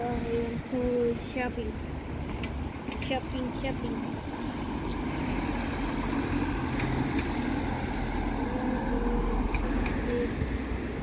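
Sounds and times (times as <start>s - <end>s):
vehicles driving past: 0.0s - 11.0s.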